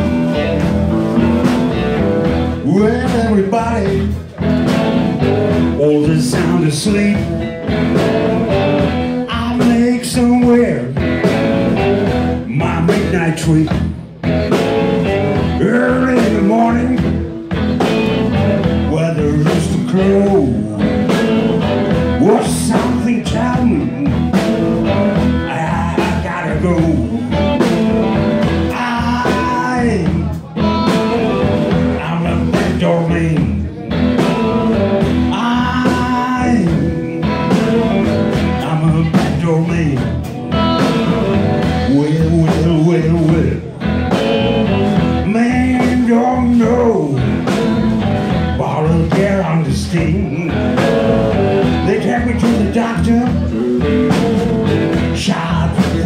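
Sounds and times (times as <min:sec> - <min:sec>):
drums: 0:00.0 - 0:56.0
electric bass: 0:00.0 - 0:56.0
electric guitar with bent notes: 0:00.0 - 0:56.0.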